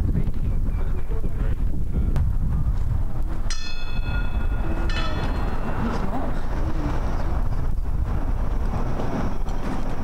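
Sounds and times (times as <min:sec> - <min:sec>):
wind rumble on microphone: 0:00.0 - 0:10.0
metal percussion bell strikes: 0:03.5 - 0:06.6.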